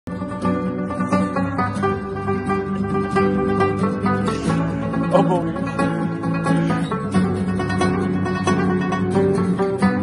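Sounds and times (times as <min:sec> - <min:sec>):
acoustic guitar accompaniment: 0:00.1 - 0:10.0
rabab plucking a melody: 0:00.1 - 0:10.0.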